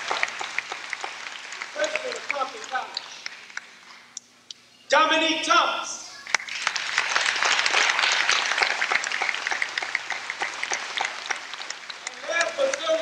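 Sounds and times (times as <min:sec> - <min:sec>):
audience applauding: 0:00.0 - 0:03.8, 0:06.2 - 0:13.0.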